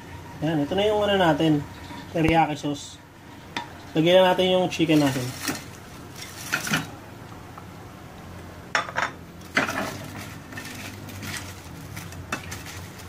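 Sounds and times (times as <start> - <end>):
metal spatula scraping frying pan: 9.5 - 13.0.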